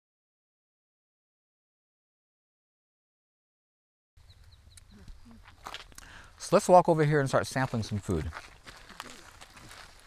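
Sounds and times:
high bird chirps: 4.2 - 5.4.

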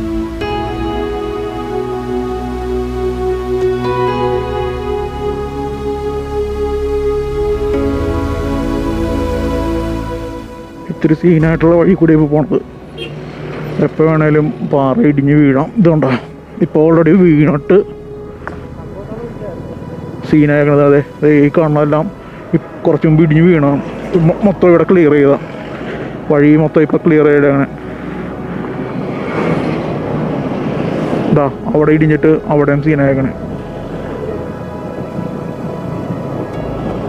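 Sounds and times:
person singing long held notes: 0.0 - 13.7
road traffic noise: 0.0 - 37.0.

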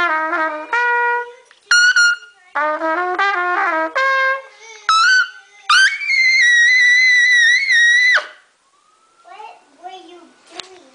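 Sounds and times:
trumpet high scream note: 0.0 - 2.4, 3.3 - 8.5.

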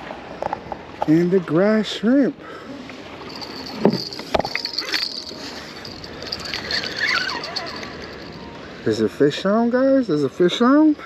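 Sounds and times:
fishing reel whirring: 3.2 - 8.4.

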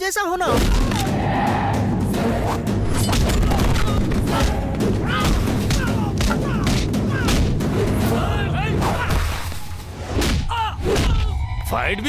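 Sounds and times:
deep rumbling background score: 0.7 - 12.0
punch and kick impacts: 3.0 - 7.7, 8.9 - 11.3.

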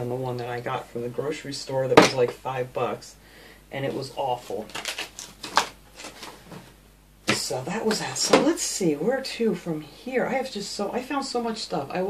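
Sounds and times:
clicks and rustles of objects handled: 4.6 - 8.5.

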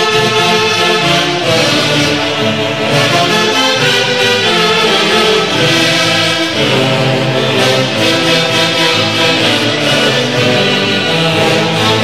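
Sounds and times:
saxophone section playing chords: 0.0 - 12.0
violins: 0.0 - 12.0.

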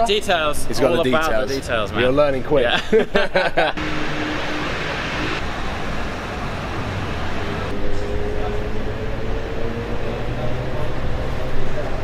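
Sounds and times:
passing vehicles rushing: 3.4 - 12.0
faint engine note rising: 3.8 - 12.0.

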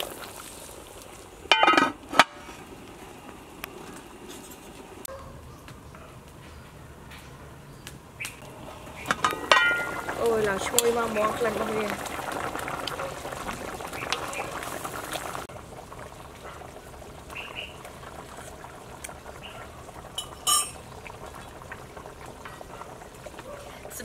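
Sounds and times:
pot bubbling at a simmer: 0.0 - 6.4, 7.9 - 24.0.

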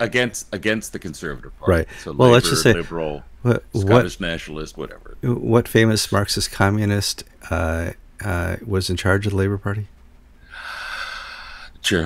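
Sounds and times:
man breathing: 1.9 - 2.2, 10.4 - 11.8.

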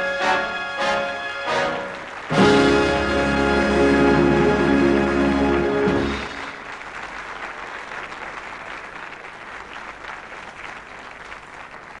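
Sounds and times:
audience applauding: 0.4 - 12.0.

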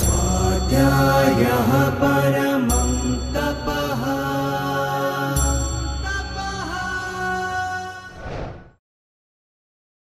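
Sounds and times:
chant-like sung vocal: 0.0 - 8.4.

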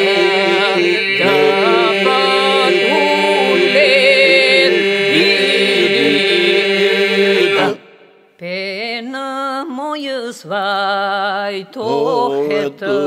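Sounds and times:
lead voices singing ornamented lines: 0.0 - 13.0
voices holding a drone: 1.3 - 3.8.

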